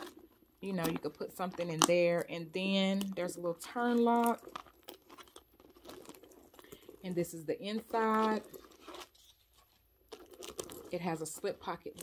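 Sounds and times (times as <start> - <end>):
backpack rustling: 0.0 - 2.0, 3.8 - 12.0.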